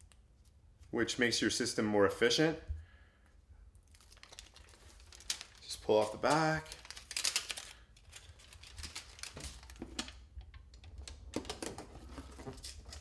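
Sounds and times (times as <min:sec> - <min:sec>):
foil tape crinkling and crackling: 0:03.8 - 0:10.3.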